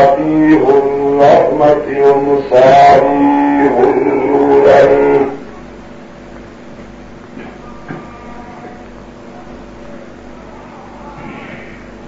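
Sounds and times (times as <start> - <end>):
person chanting a melody: 0.0 - 5.5
low steady background noise: 0.0 - 12.0.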